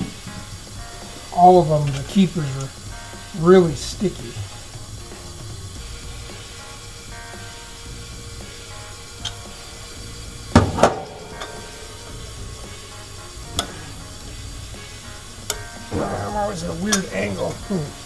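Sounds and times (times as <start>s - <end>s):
soft background music: 0.0s - 18.0s.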